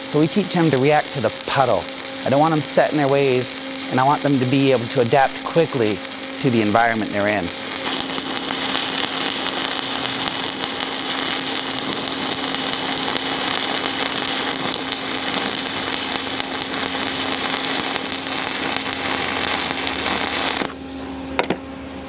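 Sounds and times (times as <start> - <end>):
welding arc crackling: 0.0 - 21.5.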